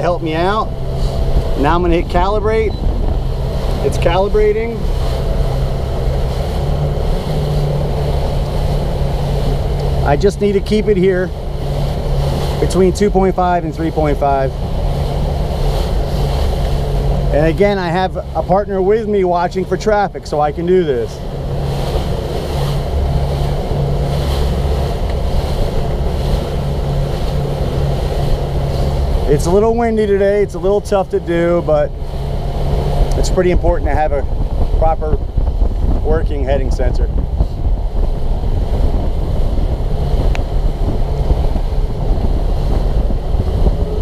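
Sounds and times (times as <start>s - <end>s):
boat engine running: 0.0s - 44.0s
wind noise on microphone: 0.0s - 44.0s.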